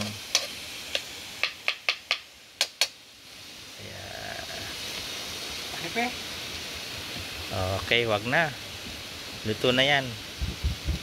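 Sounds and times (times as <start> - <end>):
faint frying hiss: 0.0 - 11.0.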